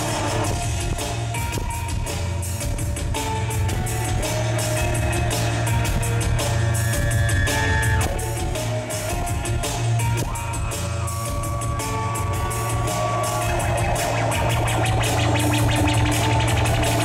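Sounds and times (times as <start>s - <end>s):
drum beat: 0.0s - 17.0s
heavy bass: 0.0s - 17.0s.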